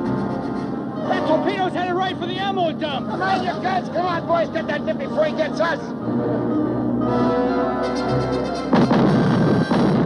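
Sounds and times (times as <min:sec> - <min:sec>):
dramatic background music: 0:00.0 - 0:10.0
explosion rumble: 0:08.7 - 0:10.0
loud explosion: 0:08.7 - 0:10.0.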